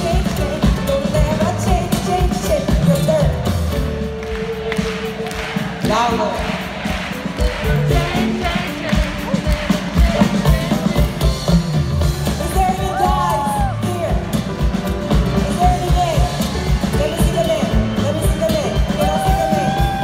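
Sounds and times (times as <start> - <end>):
bass: 0.0 - 20.0
drum kit beat: 0.0 - 20.0.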